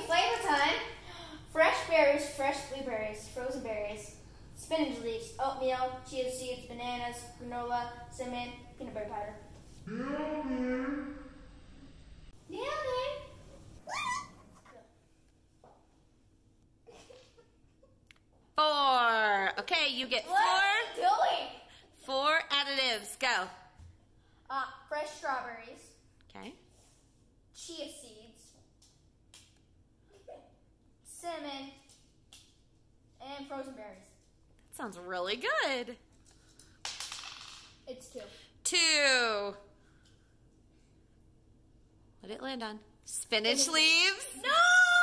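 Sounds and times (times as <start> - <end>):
child speaking: 0.0 - 9.4, 12.5 - 14.9, 20.2 - 21.6, 24.5 - 26.0, 27.6 - 28.5, 31.1 - 31.9, 33.2 - 34.2, 37.9 - 38.4, 43.6 - 45.0
child crying out excitedly: 13.8 - 14.4.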